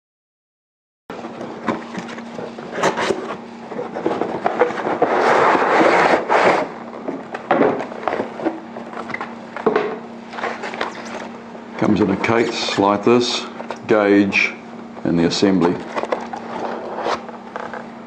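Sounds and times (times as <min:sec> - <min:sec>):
paper-pulp tray rubbing and scraping: 0:01.6 - 0:06.8, 0:10.3 - 0:13.6, 0:15.4 - 0:17.8.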